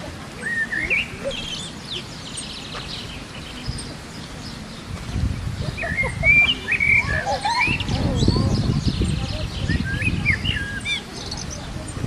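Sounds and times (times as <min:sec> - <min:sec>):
songbirds chirping: 0:00.0 - 0:12.0
wind rumbling: 0:00.0 - 0:12.0.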